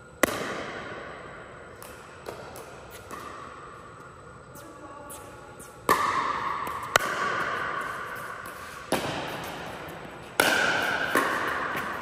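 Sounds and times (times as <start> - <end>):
paddle hitting ball: 5.8 - 12.0.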